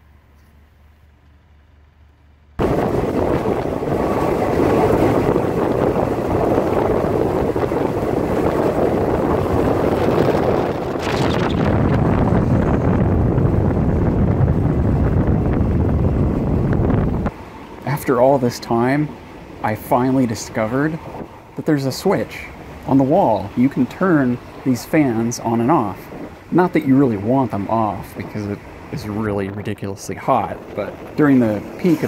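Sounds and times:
train rushing on track: 2.6 - 32.0
wind on microphone: 2.6 - 32.0.

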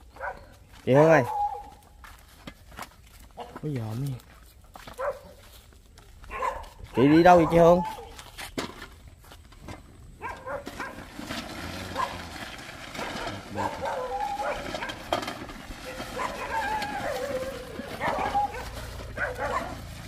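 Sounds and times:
dogs barking and yelping: 0.0 - 2.0, 4.9 - 5.4, 6.2 - 8.3, 10.2 - 11.1, 11.9 - 20.0.

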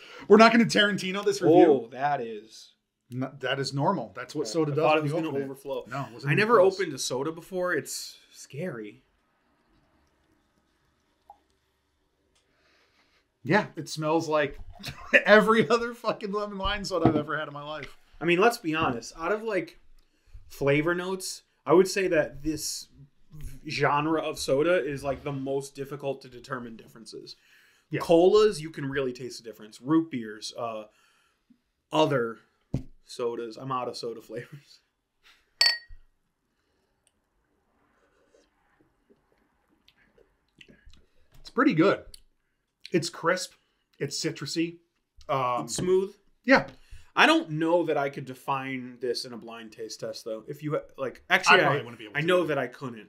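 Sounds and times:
glasses clinking: 35.6 - 36.0.

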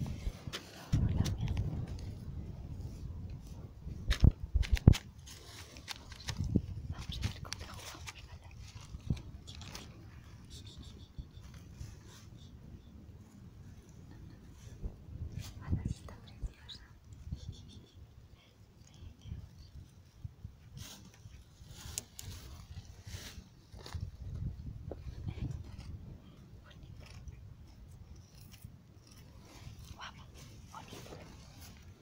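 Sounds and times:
low steady rumble: 0.0 - 32.0
person whispering: 0.6 - 1.8, 6.8 - 12.6, 15.3 - 19.8, 26.3 - 27.5, 29.8 - 31.4.

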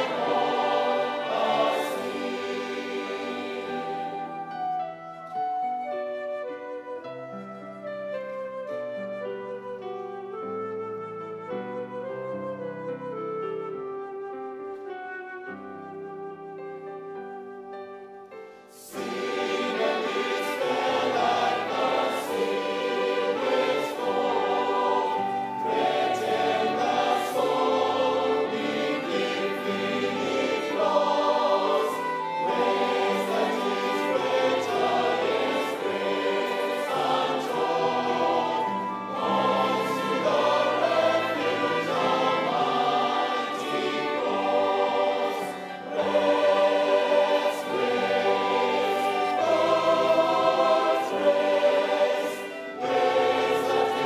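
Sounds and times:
choir singing a hymn: 0.0 - 5.5, 18.7 - 54.0.

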